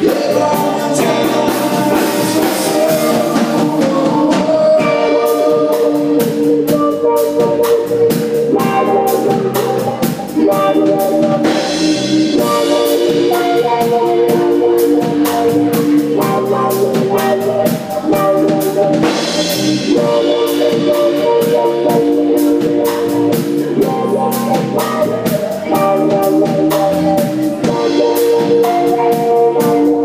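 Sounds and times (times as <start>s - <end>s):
electric guitars held notes: 0.0s - 30.0s
steady drum beat: 0.0s - 30.0s.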